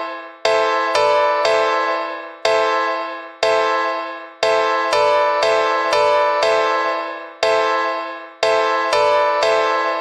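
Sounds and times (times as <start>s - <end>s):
keyboard chords ringing: 0.0s - 10.0s.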